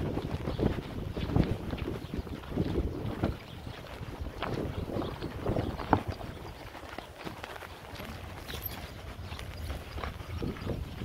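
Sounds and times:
footsteps on sandy trail: 0.0 - 11.0
wind rumbling on microphone: 0.0 - 11.0.

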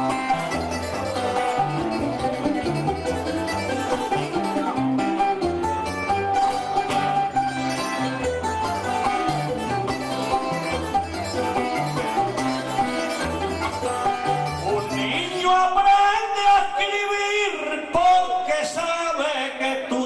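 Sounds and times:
guitar and plucked strings: 0.0 - 16.9.

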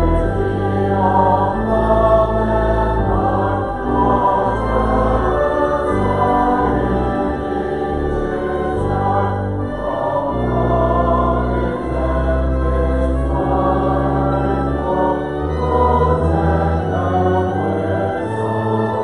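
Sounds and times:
congregation singing a hymn: 0.0 - 19.0
held low accompanying notes: 0.0 - 19.0.

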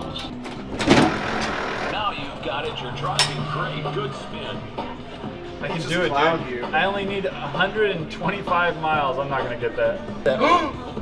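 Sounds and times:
voices in the background: 1.9 - 11.0.

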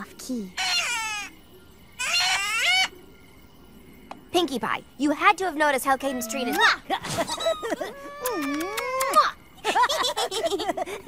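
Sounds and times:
cartoon songbird singing: 0.3 - 2.9.

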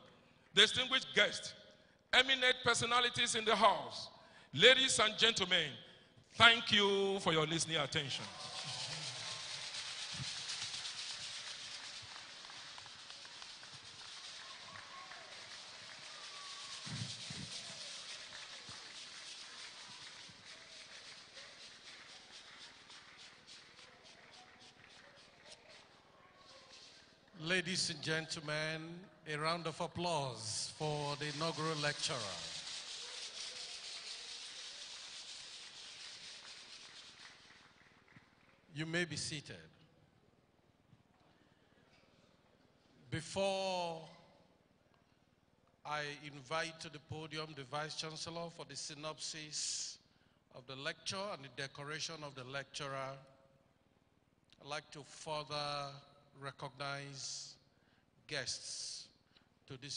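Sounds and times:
large audience applauding: 8.2 - 26.9, 30.7 - 38.7.

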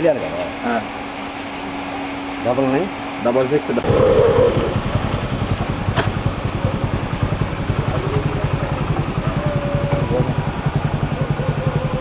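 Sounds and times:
small engine idling: 3.8 - 12.0.

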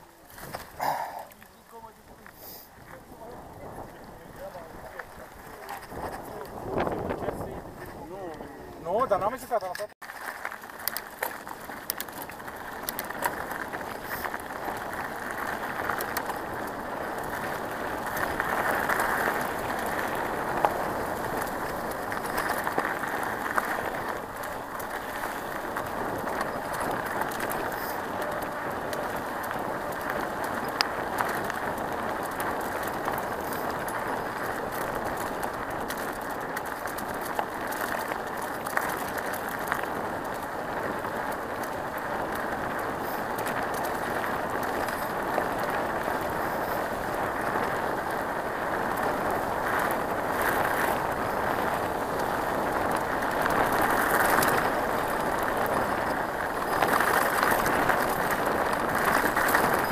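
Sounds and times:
tyres crunching on gravel: 0.0 - 59.9.

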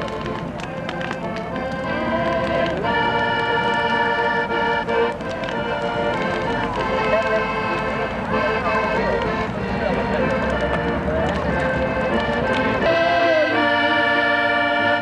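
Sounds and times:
crowd talking and calling out: 0.0 - 15.0
piano accordion music: 0.0 - 15.0.

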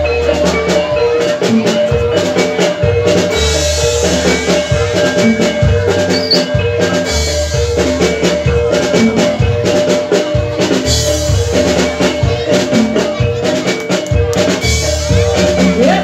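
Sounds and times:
metallophones ringing notes: 0.0 - 16.0
quick drum strokes: 0.0 - 16.0.

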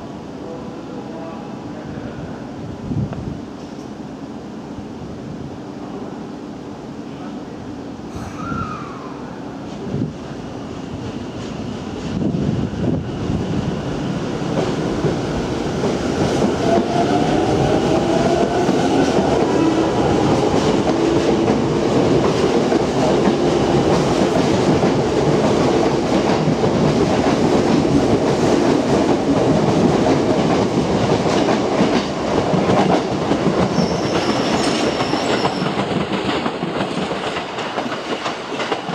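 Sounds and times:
train rumble and wheel clatter: 0.0 - 38.9.

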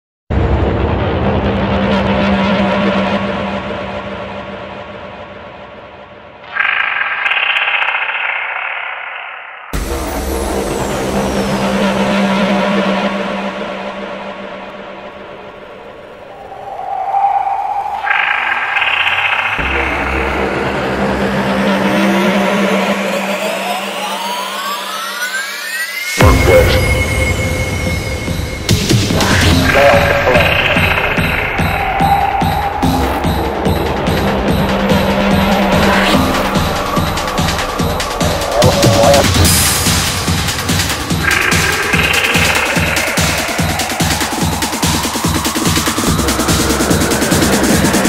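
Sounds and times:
dense noisy sound effect: 0.3 - 48.0
steady low drone: 0.4 - 25.6, 26.2 - 48.0
rising synth tones: 6.4 - 48.0
deep bass layer: 9.8 - 16.9, 17.6 - 25.0, 26.2 - 48.0
electronic dance music: 18.0 - 48.0.

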